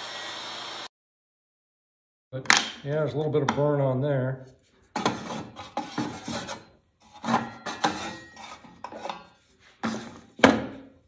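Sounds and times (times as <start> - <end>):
wood scraping and knocking on metal: 4.9 - 10.9.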